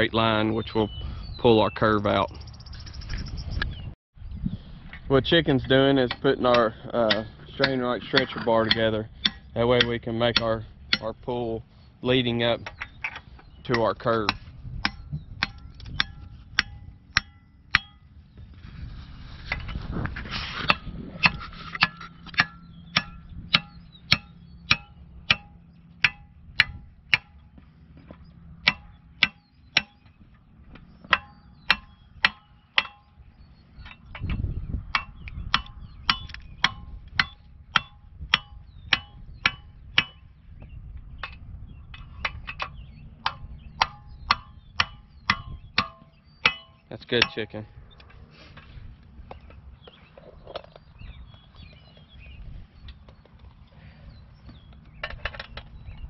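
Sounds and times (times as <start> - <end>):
hammer striking metal bar: 6.0 - 11.3, 12.6 - 18.1, 20.7 - 27.5, 28.6 - 30.2, 31.1 - 33.2, 33.8 - 40.3, 42.0 - 47.6.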